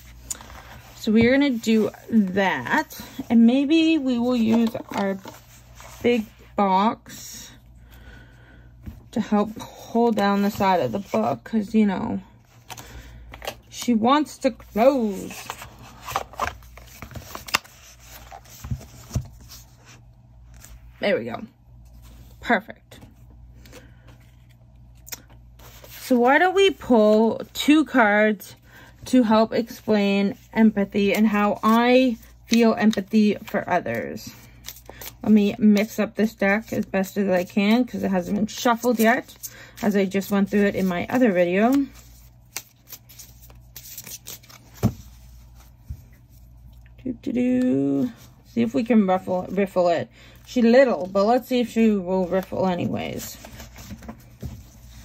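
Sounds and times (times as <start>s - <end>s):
cards being shuffled: 14.8s - 19.8s, 31.1s - 46.4s.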